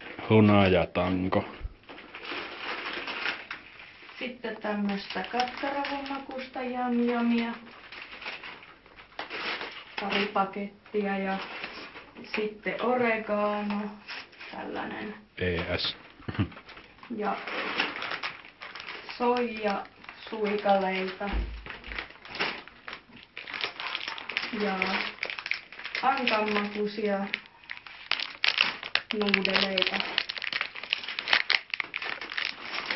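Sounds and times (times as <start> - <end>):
grocery packaging rustling: 0.0 - 32.9.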